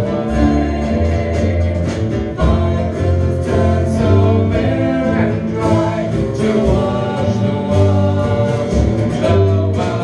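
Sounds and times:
acoustic guitar: 0.0 - 10.0
drum kit: 0.0 - 10.0
upright double bass: 0.0 - 10.0.

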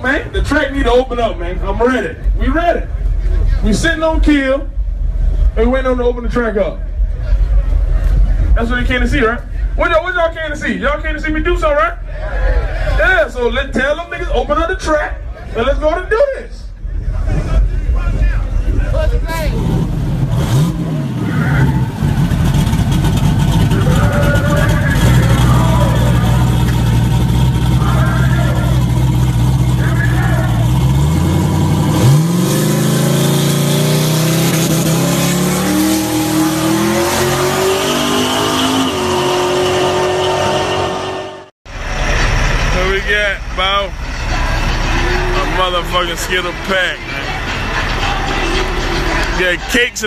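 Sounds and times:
car engine idling and revving: 0.0 - 12.6, 16.7 - 50.0.

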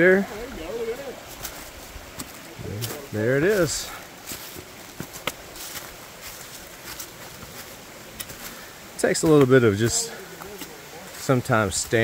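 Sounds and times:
footsteps on dry leaves and rock: 0.0 - 12.0
steady background hiss: 0.0 - 12.0.

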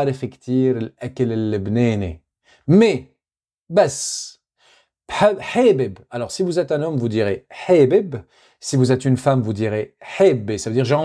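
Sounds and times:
man speaking: 0.0 - 4.4, 5.1 - 11.0.

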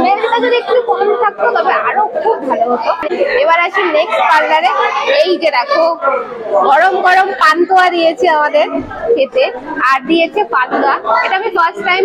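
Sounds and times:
chatter of people: 0.0 - 12.0
woman talking: 6.7 - 12.0.

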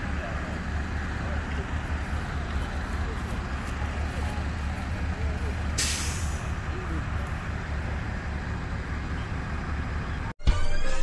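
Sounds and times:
faint voices: 0.0 - 10.3
low vehicle rumble: 0.0 - 10.4
short sharp hiss: 5.8 - 6.4.

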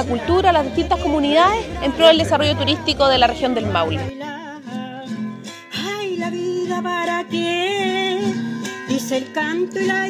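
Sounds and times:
woman singing: 0.0 - 5.2
strummed acoustic guitar: 0.0 - 10.0.

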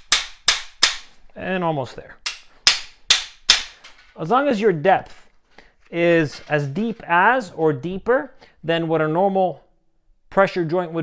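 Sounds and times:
hammer striking steel tool: 2.3 - 3.8.

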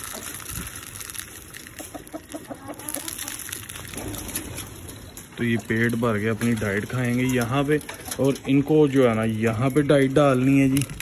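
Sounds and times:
chicken clucking: 1.7 - 6.0.

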